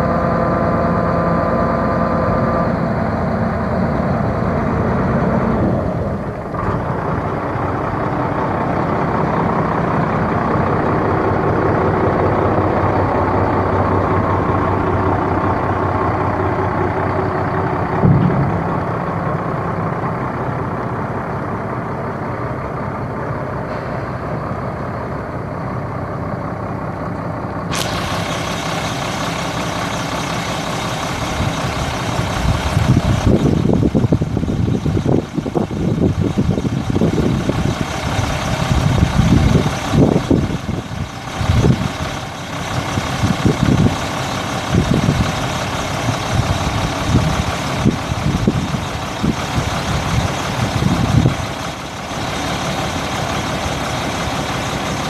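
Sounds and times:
diesel engine idling: 0:00.0 - 0:55.0
heavy low rumbles: 0:00.0 - 0:55.0.

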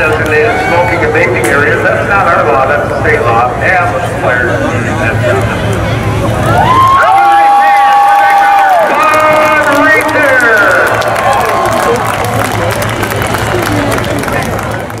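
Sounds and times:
people whooping and cheering: 0:00.2 - 0:01.2, 0:06.4 - 0:15.0.

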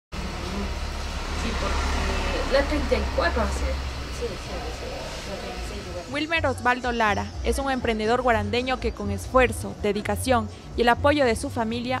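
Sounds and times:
steady low rumble: 0:00.2 - 0:11.8.

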